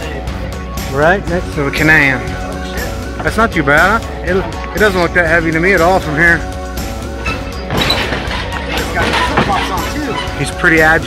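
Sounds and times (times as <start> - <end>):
background music: 0.0 - 11.0
metal roll cage clattering: 7.2 - 11.0.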